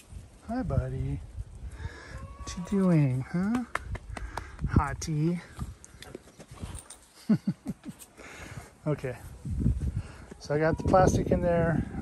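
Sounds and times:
man laughing: 0:07.2 - 0:08.2.

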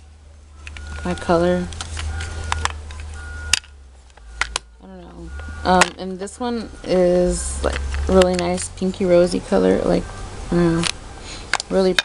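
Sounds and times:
low hum: 0:00.0 - 0:11.8
plastic compacts clicking: 0:00.6 - 0:06.0, 0:07.6 - 0:08.7.

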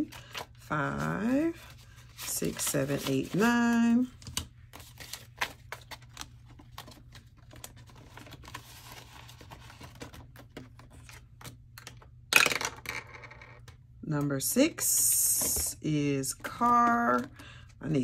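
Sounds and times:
vinyl binder pages rustling: 0:00.0 - 0:11.6.

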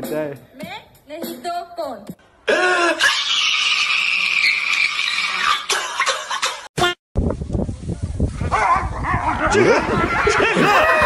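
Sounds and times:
animal crying: 0:02.8 - 0:05.7.

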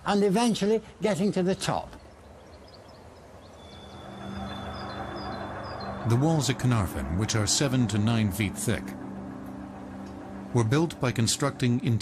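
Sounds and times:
low steady drone: 0:03.4 - 0:12.0
thin high steady tone: 0:03.6 - 0:12.0.

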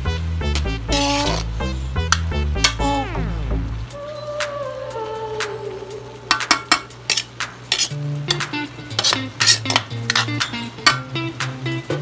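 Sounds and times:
metal spoon scraping a wok: 0:00.9 - 0:01.5, 0:06.7 - 0:10.5.

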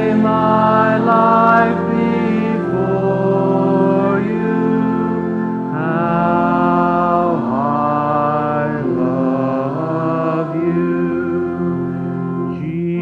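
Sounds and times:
man singing into a microphone: 0:00.0 - 0:11.8, 0:12.4 - 0:13.0
congregation singing a hymn: 0:00.0 - 0:13.0.

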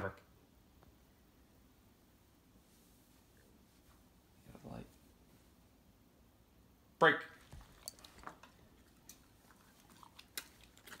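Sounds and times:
dogs chewing food: 0:07.4 - 0:11.0.

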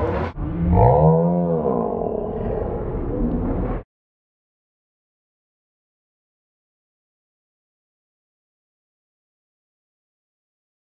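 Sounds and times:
loud drawn-out roar: 0:00.0 - 0:03.8.

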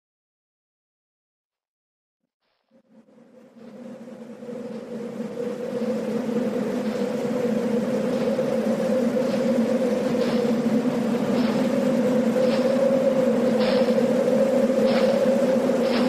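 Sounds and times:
low droning tones: 0:02.8 - 0:16.0
hiss: 0:03.6 - 0:16.0.

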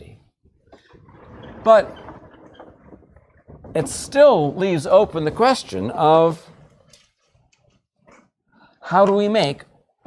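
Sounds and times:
man speaking: 0:01.6 - 0:02.0, 0:03.8 - 0:06.6.

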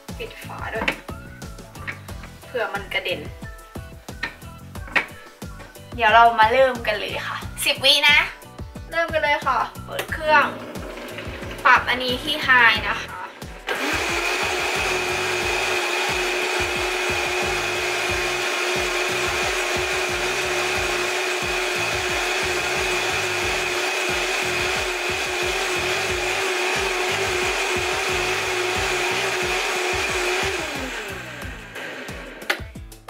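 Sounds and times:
blender running: 0:10.1 - 0:32.8.

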